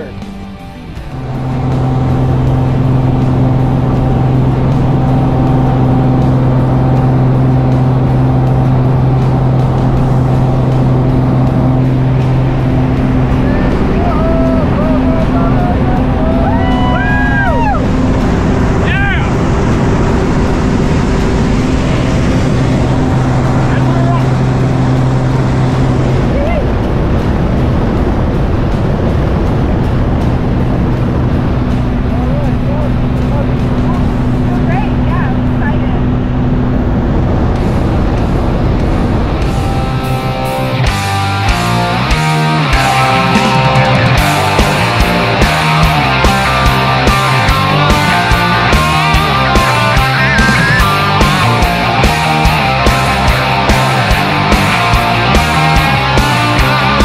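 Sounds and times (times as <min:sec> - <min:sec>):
light aircraft engine droning: 0:00.0 - 0:57.0.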